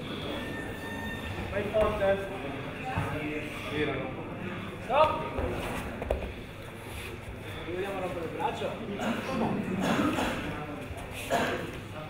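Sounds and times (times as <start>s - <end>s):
voices in a large hall: 0.0s - 12.0s.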